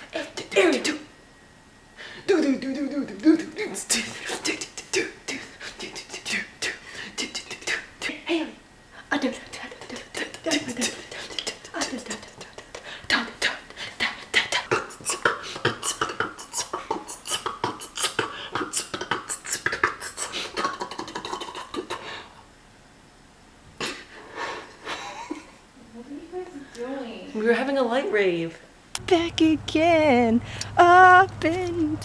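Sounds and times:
beatboxing: 2.3 - 8.2, 9.5 - 22.2.

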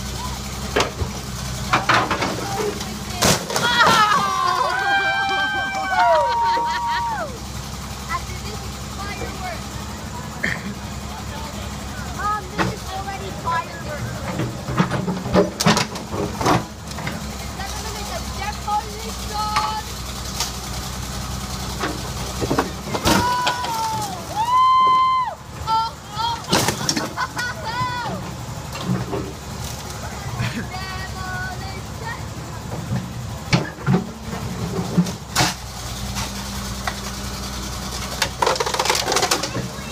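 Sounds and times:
diesel engine running: 0.0 - 39.9.

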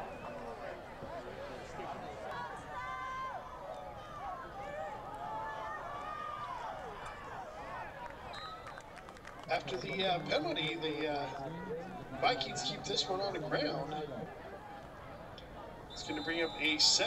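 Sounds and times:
stadium crowd shouting and cheering: 0.0 - 17.0.

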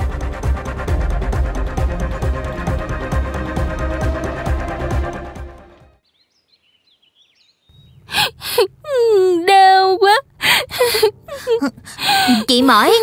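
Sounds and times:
faint bird chirps: 6.1 - 8.2
woman moaning and gasping: 8.1 - 12.5.

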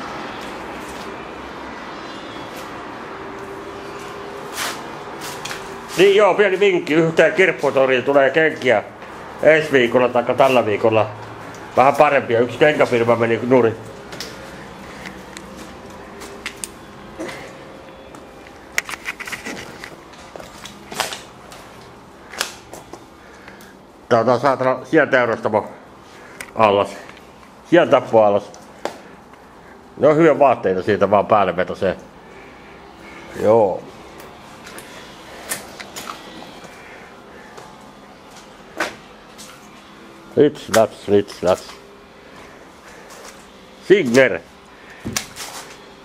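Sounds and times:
camera handling: 18.8 - 20.0
footsteps on rubble: 18.8 - 21.8.

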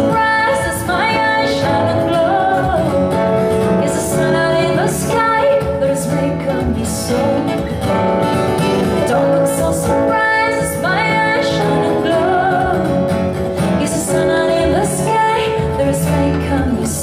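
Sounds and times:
instrumental accompaniment: 0.0 - 17.0
woman singing into a microphone: 0.0 - 17.0.

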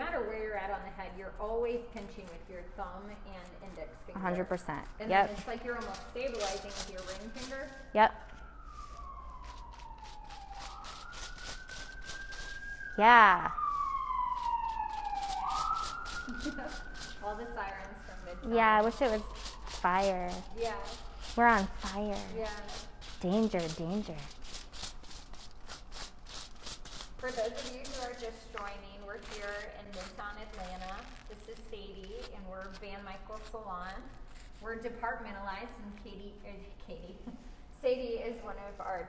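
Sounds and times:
brush stroking hair: 4.4 - 7.9, 8.7 - 34.8
emergency vehicle siren wailing: 5.0 - 24.4.

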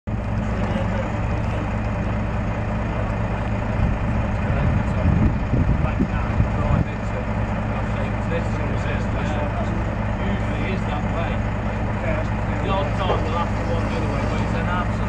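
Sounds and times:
diesel lorry engine idling: 0.1 - 15.0.

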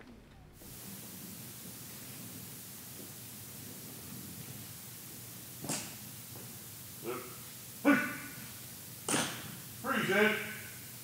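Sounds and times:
man shouting commands: 7.0 - 8.4, 9.8 - 10.8.

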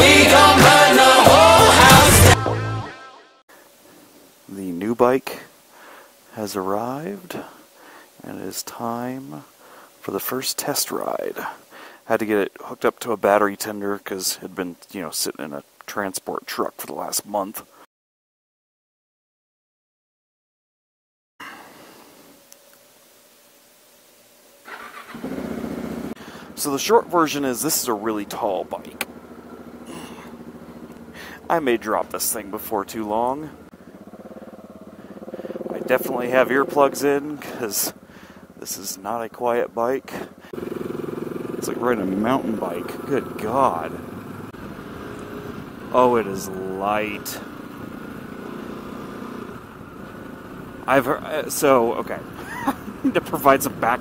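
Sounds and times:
motorcycle engine running: 24.7 - 39.0, 40.0 - 54.0.

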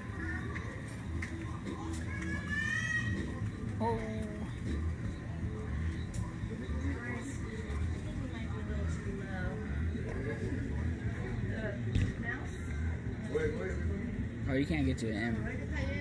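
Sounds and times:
distant voices chattering: 0.0 - 16.0.

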